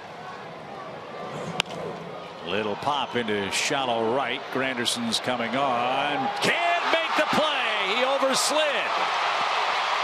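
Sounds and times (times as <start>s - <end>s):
ballpark crowd noise: 0.0s - 10.0s.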